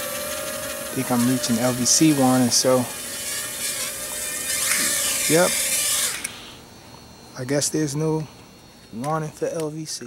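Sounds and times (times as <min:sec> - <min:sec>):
quadcopter motors whining: 0:00.0 - 0:06.7.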